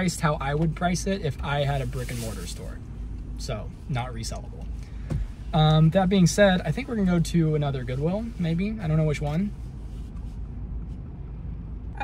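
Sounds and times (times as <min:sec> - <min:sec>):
car cabin low rumble: 0:00.0 - 0:12.0.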